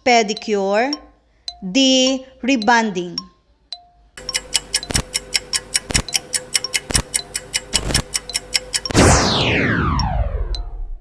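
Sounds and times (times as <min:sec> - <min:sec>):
rapid timer ticking: 0:00.0 - 0:10.7.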